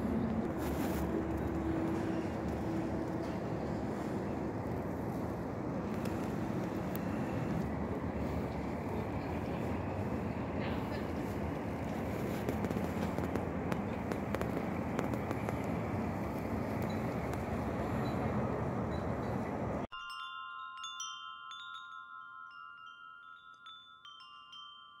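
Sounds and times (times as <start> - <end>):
outdoor rumble and hiss: 0.0 - 19.9
wind chime ringing: 19.9 - 25.0.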